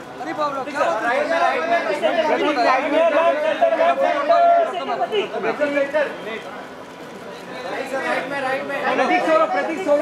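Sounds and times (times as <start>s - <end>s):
overlapping crowd chatter: 0.0s - 10.0s
people shouting calls: 1.3s - 5.4s.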